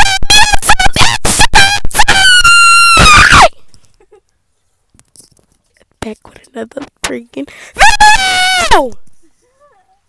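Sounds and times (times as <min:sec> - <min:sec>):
girl squealing with laughter: 0:02.1 - 0:04.2.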